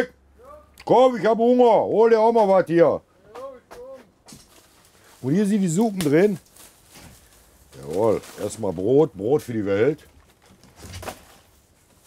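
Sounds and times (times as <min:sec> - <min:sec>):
plastic bag rustling: 0:04.3 - 0:12.0.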